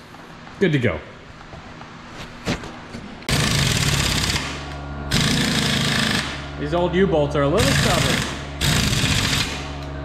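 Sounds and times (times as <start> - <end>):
impact wrench hammering: 3.3 - 6.5, 7.6 - 9.8.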